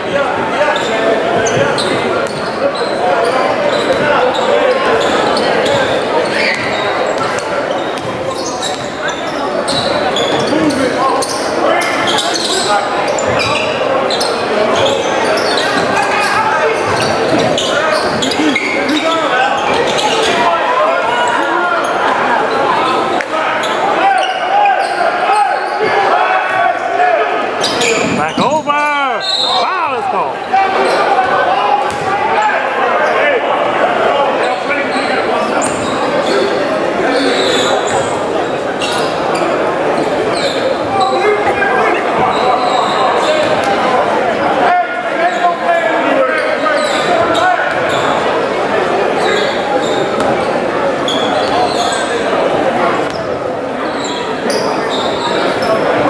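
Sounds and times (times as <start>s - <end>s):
voices echoing in a hall: 0.0s - 56.0s.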